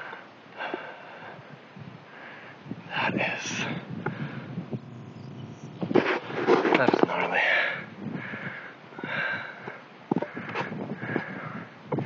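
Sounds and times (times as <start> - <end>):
person breathing hard: 0.0 - 1.5, 2.1 - 2.6, 3.4 - 4.6, 7.3 - 11.8.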